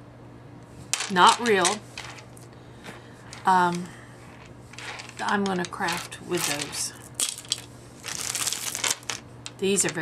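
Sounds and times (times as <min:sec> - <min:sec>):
beads clicking: 0:00.9 - 0:10.0
plastic bag crinkling: 0:01.0 - 0:10.0.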